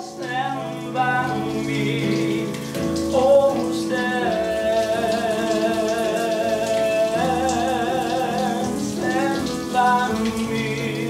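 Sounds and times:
person singing: 0:00.0 - 0:11.0
shower spray running: 0:00.0 - 0:11.0.

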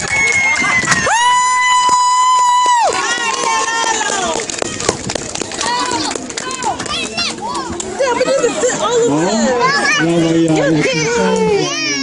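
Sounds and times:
children talking and calling out: 0:03.0 - 0:12.0.

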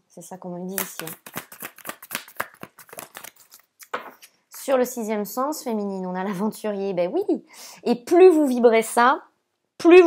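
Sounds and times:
cards being shuffled: 0:00.7 - 0:04.6.

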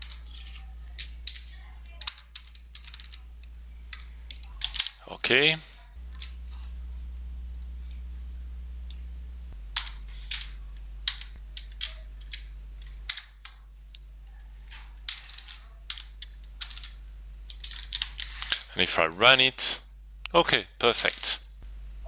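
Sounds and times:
steady low hum: 0:00.0 - 0:20.8, 0:21.4 - 0:22.0.

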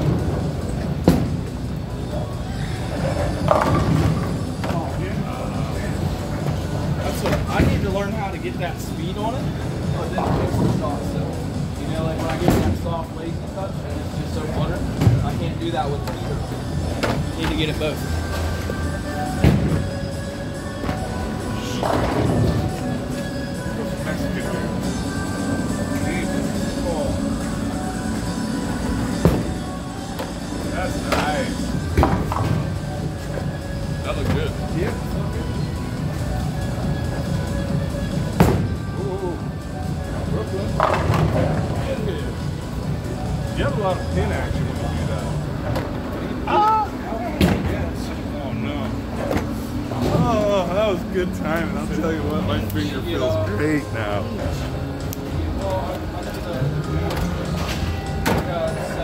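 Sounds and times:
background music: 0:00.0 - 0:59.0
voices: 0:01.8 - 0:59.0
bowling balls rolling on wooden lanes: 0:02.9 - 0:05.0.

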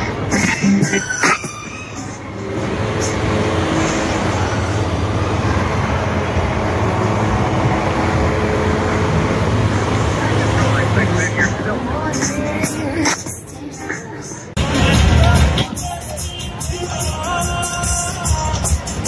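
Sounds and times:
diesel truck engine droning: 0:00.0 - 0:19.0.

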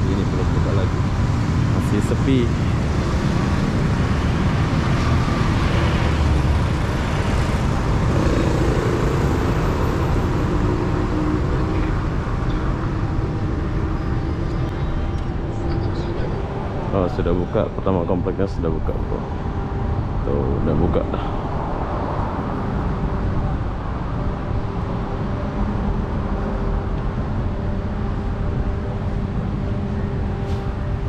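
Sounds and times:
engine drone: 0:00.0 - 0:31.0
traffic rumble: 0:00.0 - 0:31.0.

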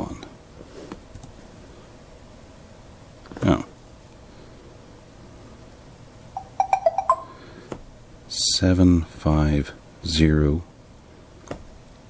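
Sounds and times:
electronic notification chime: 0:06.4 - 0:07.4.

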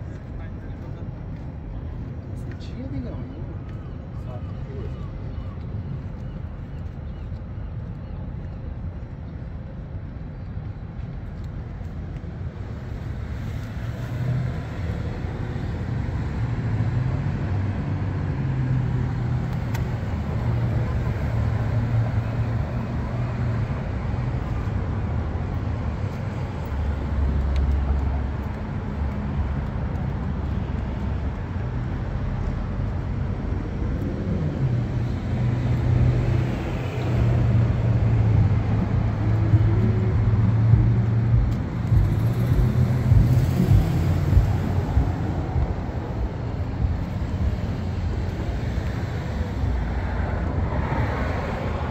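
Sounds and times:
vehicle engines passing: 0:00.0 - 0:51.9.

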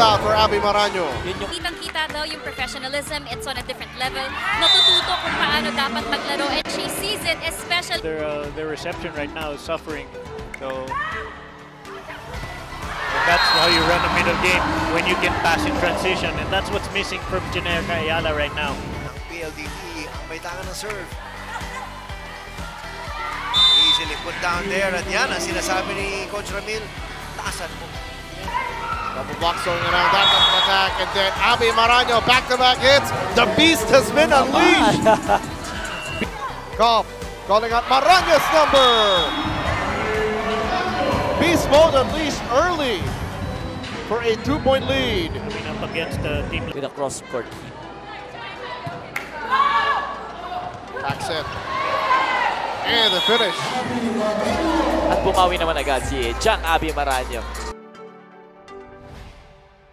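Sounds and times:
referee's whistle blast: 0:04.6 - 0:05.4, 0:13.2 - 0:14.3, 0:23.5 - 0:24.3, 0:30.0 - 0:30.9, 0:38.7 - 0:39.8, 0:52.9 - 0:53.8
crowd hubbub: 0:11.8 - 0:18.0, 0:29.7 - 0:36.8, 0:38.2 - 0:57.8
arena music beat: 0:20.6 - 0:45.3
shouted calls: 0:38.0 - 0:41.2, 0:51.8 - 0:53.8.

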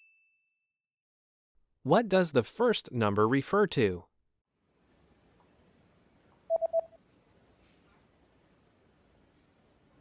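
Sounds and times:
phone text alert beeps: 0:06.5 - 0:07.0.

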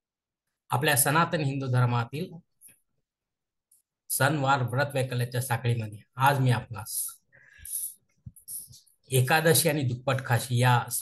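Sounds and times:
man breathing: 0:07.3 - 0:08.0.

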